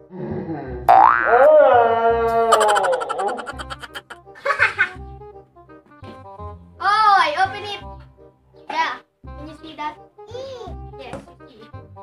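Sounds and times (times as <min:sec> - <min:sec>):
cartoon sliding tone: 0:02.5 - 0:04.2.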